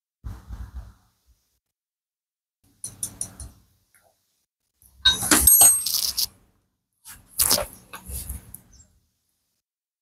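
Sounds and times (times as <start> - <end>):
high metallic ring: 5.0 - 6.2
metal tools clattering: 5.1 - 6.3.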